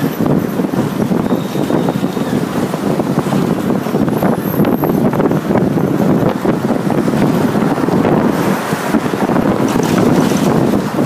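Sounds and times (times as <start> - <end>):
bus rumble: 0.0 - 11.0
traffic: 0.0 - 11.0
wind rushing over microphone: 0.0 - 11.0.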